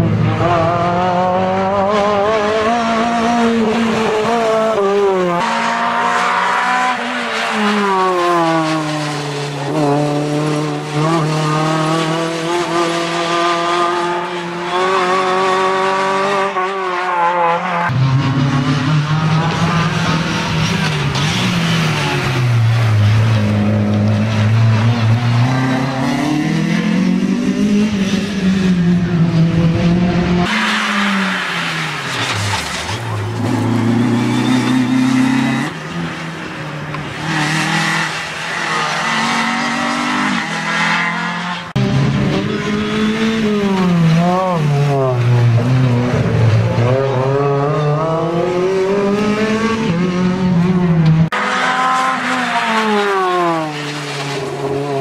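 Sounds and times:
race car engines revving: 0.0 - 55.0.

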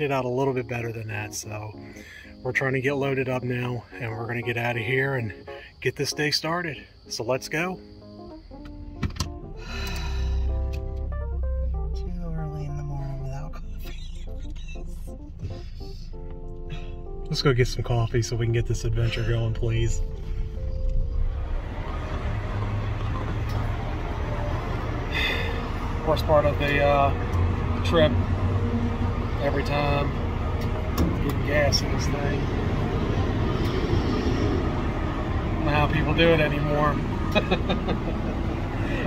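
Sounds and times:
motor vehicle rumble and hiss: 8.0 - 39.0.

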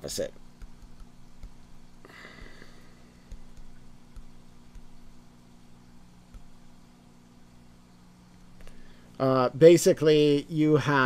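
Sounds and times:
stylus tapping on tablet: 0.5 - 1.8, 3.2 - 5.2, 6.2 - 6.6.

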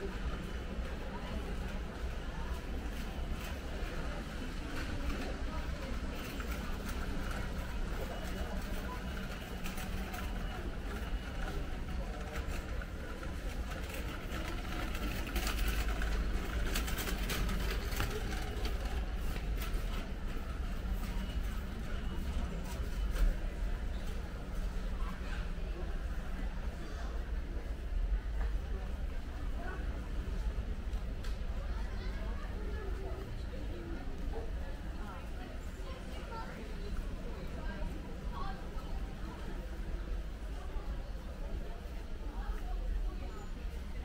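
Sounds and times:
indistinct chatter of shoppers: 0.0 - 44.0.

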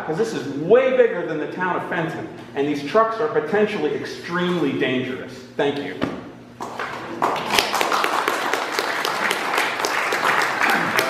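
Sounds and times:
audience applauding: 7.1 - 11.0.

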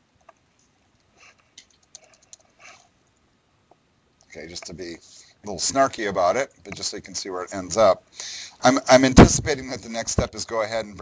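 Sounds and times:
computer keyboard keystrokes: 1.6 - 2.4.

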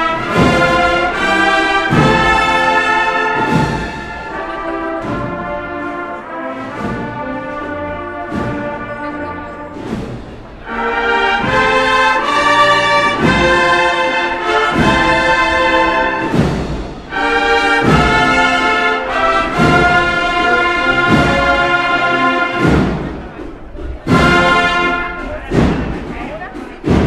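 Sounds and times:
drum beat: 0.0 - 5.9, 6.6 - 27.0
brass band playing slow march: 0.0 - 27.0.

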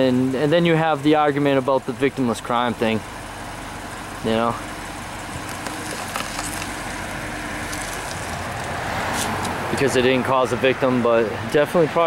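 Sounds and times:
traffic road noise: 0.0 - 12.0.

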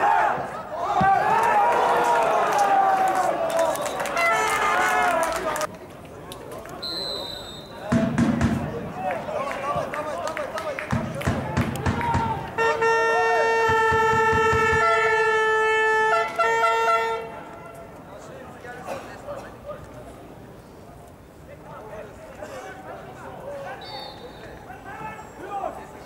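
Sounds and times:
voices: 0.0 - 26.0
horn blasts: 12.6 - 17.9.

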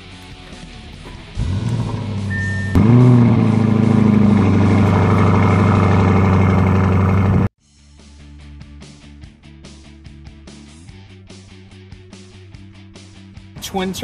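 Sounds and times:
car engine starting and idling: 0.8 - 7.5.

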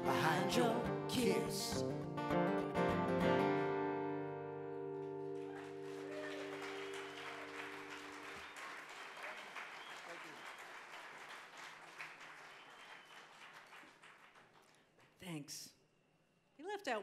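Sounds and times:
acoustic guitar chord ringing: 0.0 - 5.9
audience applause: 5.0 - 15.0.

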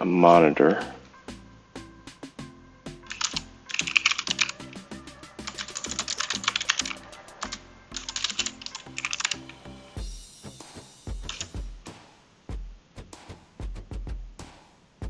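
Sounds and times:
background music: 0.0 - 15.0
fast keyboard typing: 3.1 - 9.6, 11.2 - 11.6.

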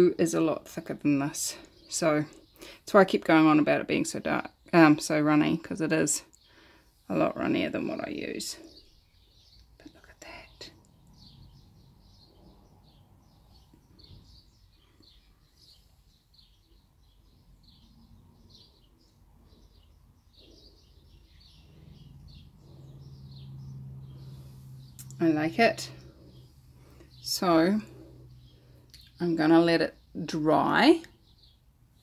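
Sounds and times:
small birds chirping: 0.0 - 32.0
low steady hum: 9.8 - 30.9
soft clicks: 25.0 - 25.2.

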